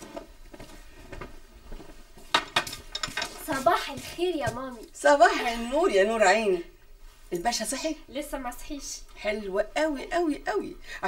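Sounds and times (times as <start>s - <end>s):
plates and cutlery clinking: 2.3s - 3.6s.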